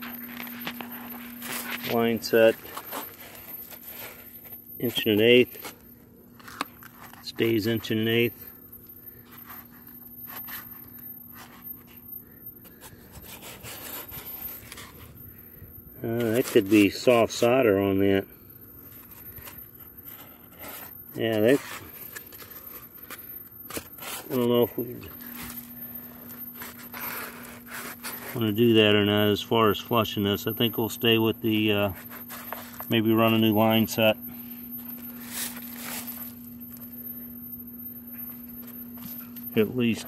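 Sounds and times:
hand rubbing insulated pipe: 0.0 - 17.8, 18.8 - 40.0
steady low hum: 0.0 - 40.0.

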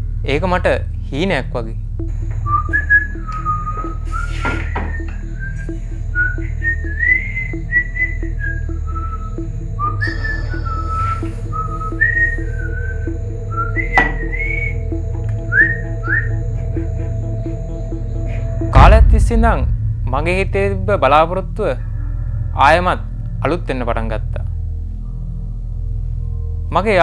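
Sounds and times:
background music with drone: 0.0 - 27.0
man whistling a tune: 2.4 - 18.8.

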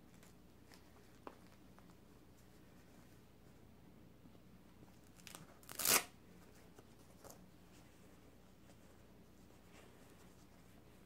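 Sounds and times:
soft fabric rustling: 0.0 - 11.0.

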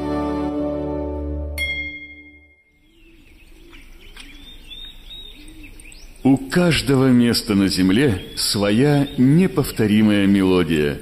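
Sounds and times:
music: 0.0 - 2.7
birds chirping: 1.6 - 11.0
lower repeated bird call: 2.5 - 11.0.

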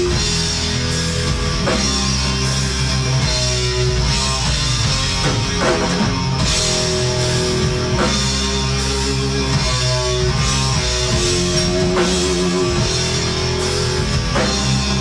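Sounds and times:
metal band playing live: 0.0 - 15.0.

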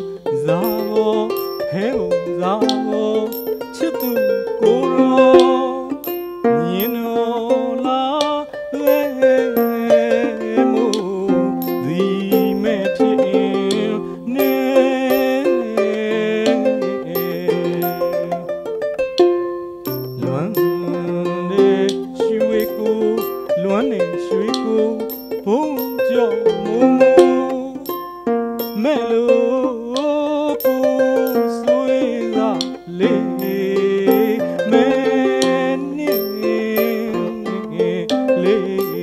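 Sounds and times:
small hand cymbals striking: 0.0 - 7.3, 8.2 - 12.9, 17.2 - 29.1, 29.9 - 37.4, 38.8 - 39.0
man singing: 0.0 - 18.7, 20.0 - 39.0
plucked harp melody: 0.0 - 39.0.

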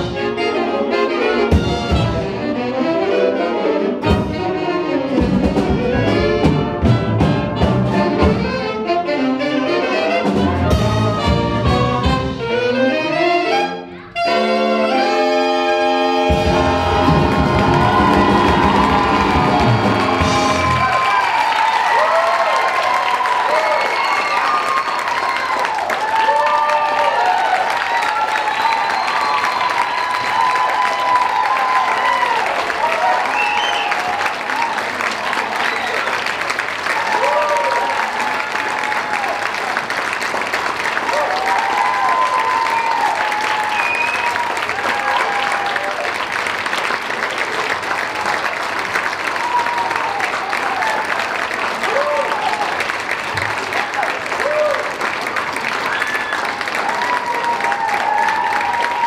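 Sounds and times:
crowd shouting and whooping: 16.0 - 39.8, 41.0 - 46.2, 49.2 - 55.1, 55.7 - 59.0
audience applauding: 16.2 - 59.0.

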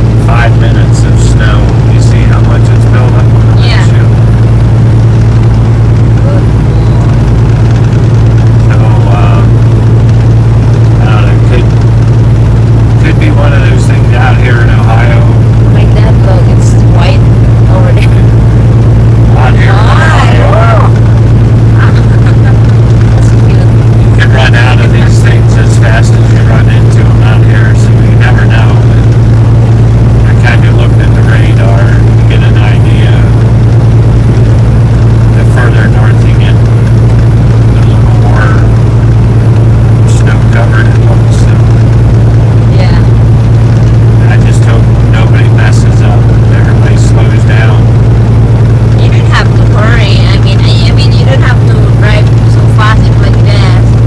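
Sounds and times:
road noise: 0.0 - 54.0
truck engine drone: 0.0 - 54.0.

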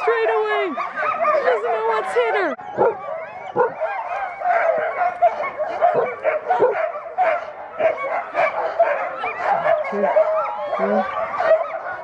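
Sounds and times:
dogs barking and yipping: 0.0 - 12.0.

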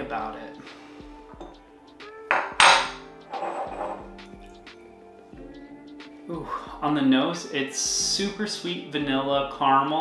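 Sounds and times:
background music: 0.0 - 10.0
bottle and glass clinking: 1.3 - 1.6, 2.3 - 4.2.

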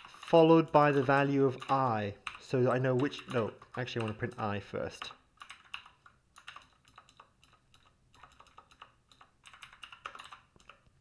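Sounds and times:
keyboard typing: 0.0 - 11.0.

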